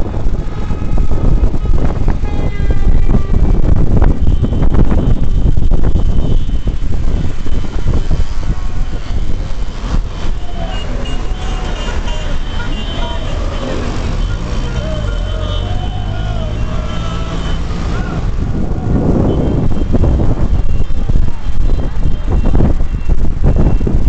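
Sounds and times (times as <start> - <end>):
car road and engine noise: 0.0 - 24.0
passing motorbikes and cars: 0.0 - 24.0
wind buffeting microphone: 0.0 - 24.0
people calling out: 10.4 - 19.4.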